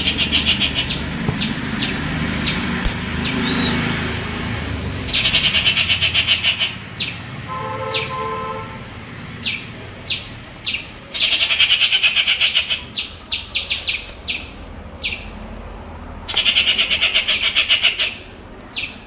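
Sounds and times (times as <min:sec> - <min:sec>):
sharp downward bird calls: 0:00.0 - 0:03.9, 0:05.1 - 0:07.2, 0:16.3 - 0:19.0
birds chattering harshly: 0:00.0 - 0:15.4, 0:16.3 - 0:19.0.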